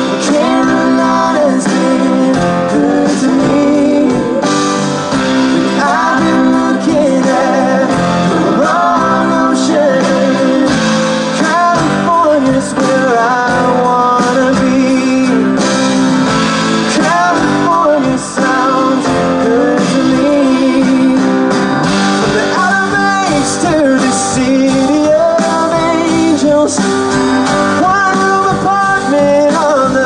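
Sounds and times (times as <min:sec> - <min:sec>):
drums: 0:00.0 - 0:30.0
electric guitar: 0:00.0 - 0:30.0.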